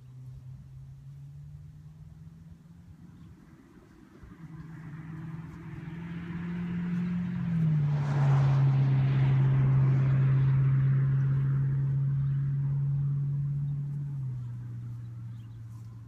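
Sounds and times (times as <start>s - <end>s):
passing engine hum: 0.0s - 16.0s.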